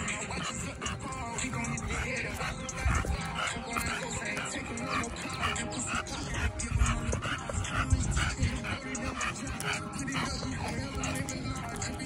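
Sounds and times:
dog panting fast: 0:00.0 - 0:12.0
hip-hop music with heavy beat: 0:00.0 - 0:12.0.

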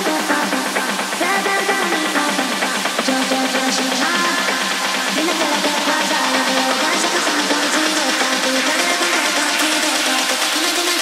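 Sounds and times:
high hiss: 0:00.0 - 0:11.0.

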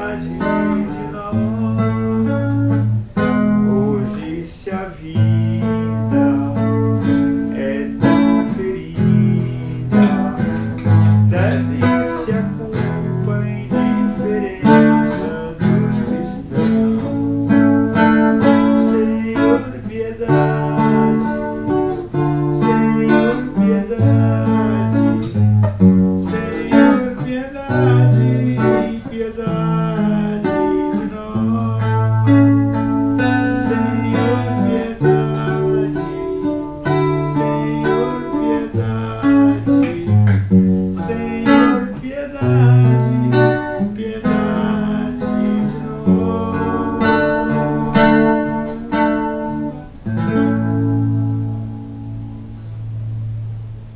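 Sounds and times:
man singing: 0:00.0 - 0:50.0
classical guitar strummed and picked: 0:00.0 - 0:53.9.

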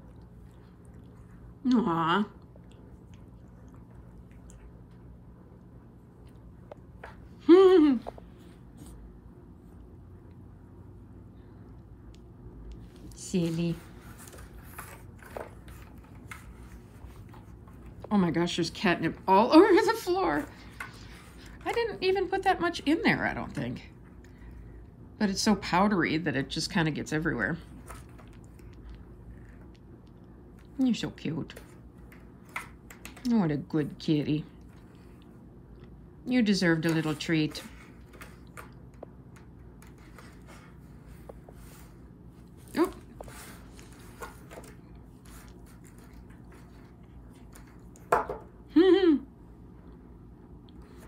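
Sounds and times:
cat rustling on cardboard scratcher: 0:13.1 - 0:18.0, 0:39.8 - 0:47.8.

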